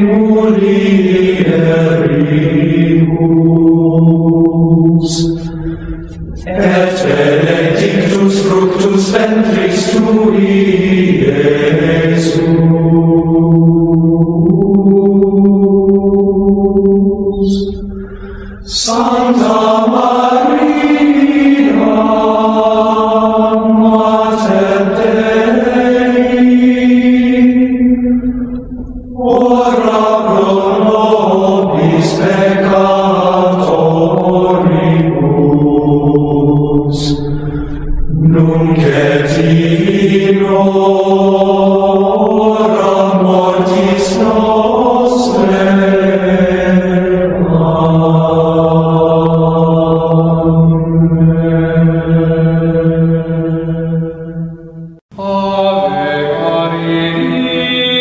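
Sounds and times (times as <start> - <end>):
voices chanting: 0.0 - 54.4.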